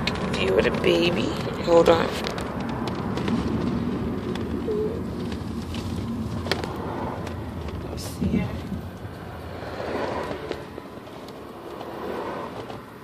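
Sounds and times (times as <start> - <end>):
car road and engine noise: 0.0 - 13.0.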